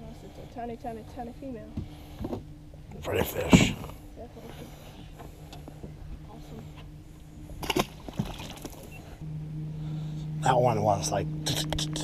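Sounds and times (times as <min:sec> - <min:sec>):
low steady hum: 0:00.0 - 0:12.0
fish splashing into water: 0:07.6 - 0:08.9.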